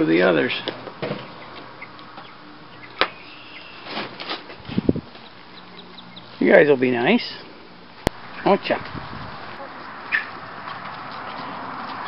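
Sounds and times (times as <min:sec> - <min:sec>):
chicks peeping: 0:01.3 - 0:12.0.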